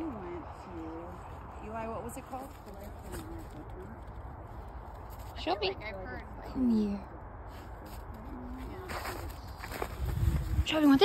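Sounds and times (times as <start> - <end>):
crunch in snow: 7.5 - 11.0.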